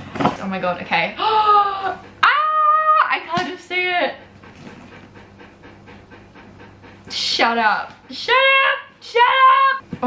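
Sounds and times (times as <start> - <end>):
refrigerator humming: 0.0 - 5.6.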